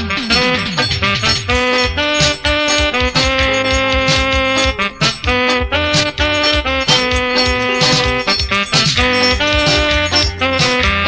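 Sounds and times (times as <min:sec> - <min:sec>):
held melody notes: 0:00.0 - 0:11.0
steady drum beat: 0:00.0 - 0:11.0.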